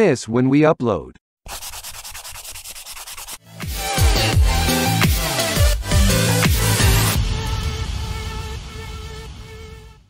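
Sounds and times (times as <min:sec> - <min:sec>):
fast scratchy rubbing: 0:01.5 - 0:03.4.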